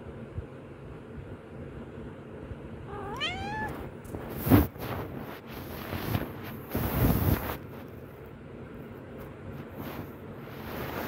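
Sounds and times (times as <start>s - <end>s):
cat meowing: 2.9s - 3.9s
rustling close to microphone: 3.0s - 8.3s, 9.2s - 11.0s.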